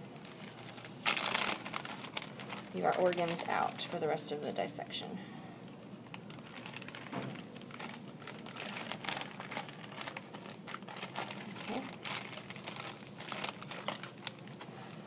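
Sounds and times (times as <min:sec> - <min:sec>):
plastic bag crinkling: 0:00.0 - 0:04.5, 0:05.6 - 0:15.0.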